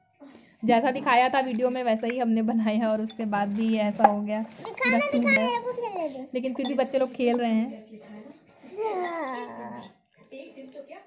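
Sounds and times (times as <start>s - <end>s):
child whining: 8.7s - 9.9s.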